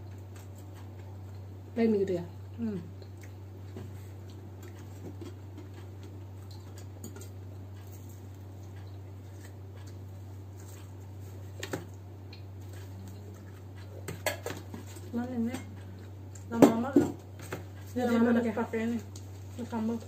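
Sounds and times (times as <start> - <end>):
steady low hum: 0.0 - 20.0
chewing: 0.1 - 1.6, 2.4 - 16.5.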